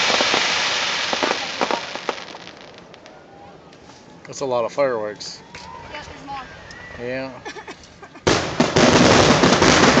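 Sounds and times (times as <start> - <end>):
barrage of firework bursts: 0.0 - 3.1, 8.3 - 10.0
loud firework bang: 8.3 - 10.0.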